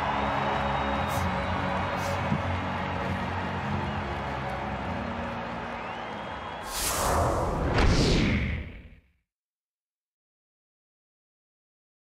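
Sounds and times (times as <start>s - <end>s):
stadium crowd cheering: 0.0s - 8.9s
whoosh transition effects: 6.7s - 9.0s.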